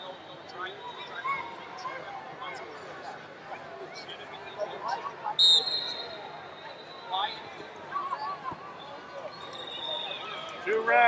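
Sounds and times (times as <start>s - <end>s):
crowd noise: 0.0s - 11.0s
shrill whistle blast: 5.4s - 7.0s.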